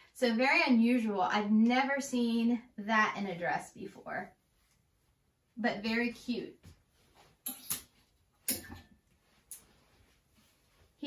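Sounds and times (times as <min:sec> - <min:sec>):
hangers clicking on metal rail: 0:07.4 - 0:07.9, 0:08.5 - 0:08.8.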